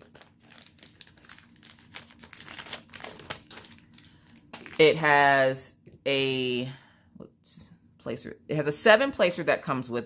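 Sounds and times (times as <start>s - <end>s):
plastic packaging crinkling: 0.0s - 5.0s.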